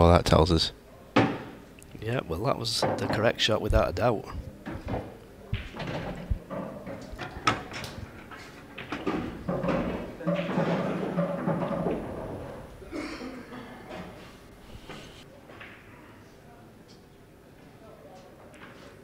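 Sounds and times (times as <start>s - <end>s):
faint indistinct voices: 15.2s - 19.0s.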